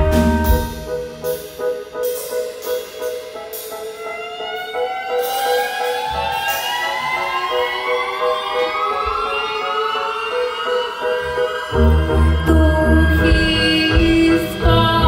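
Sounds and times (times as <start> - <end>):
bass and drums: 0.0 - 2.6, 11.8 - 15.0
band music with rising pitch glide: 0.0 - 15.0.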